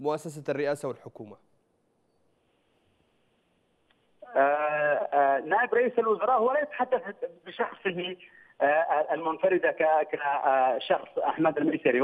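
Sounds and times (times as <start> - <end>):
man speaking over telephone: 4.2 - 12.0.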